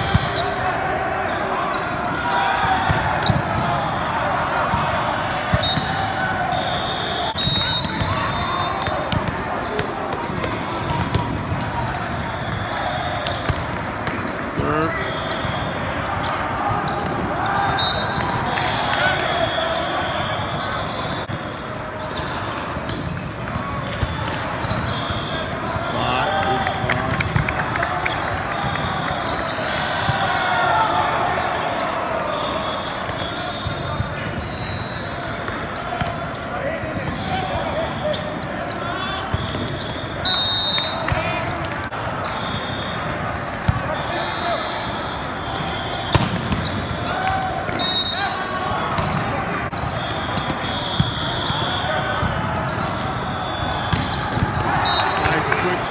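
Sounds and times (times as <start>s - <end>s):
din of players' voices: 0.0s - 55.9s
volleyball slaps: 7.8s - 14.3s, 45.6s - 47.8s, 48.9s - 49.5s, 53.8s - 55.5s.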